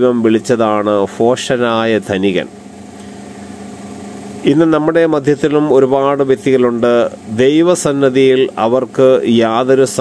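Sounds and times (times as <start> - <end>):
person speaking: 0.0 - 3.7, 4.4 - 10.0
low background hum: 0.0 - 10.0.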